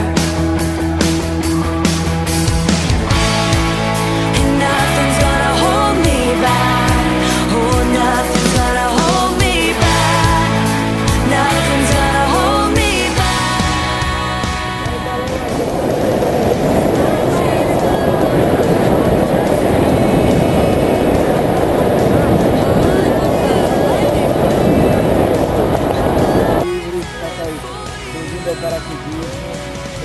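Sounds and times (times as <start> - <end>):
background music: 0.0 - 30.0
wind rushing over microphone: 1.2 - 28.7.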